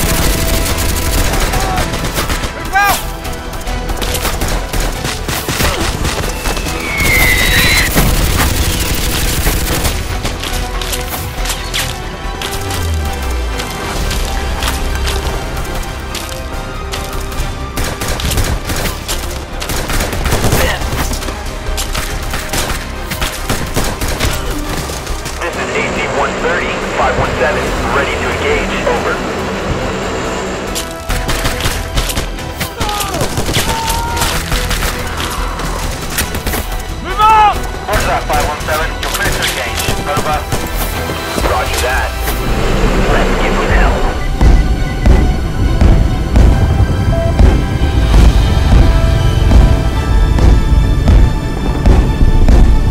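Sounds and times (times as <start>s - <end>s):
film music score: 0.0s - 52.9s.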